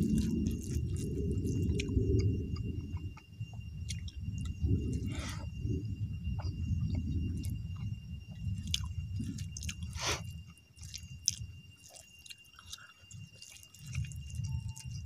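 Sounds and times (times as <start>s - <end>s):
close-up chewing with wet smacks: 0.0s - 5.6s, 6.2s - 15.0s.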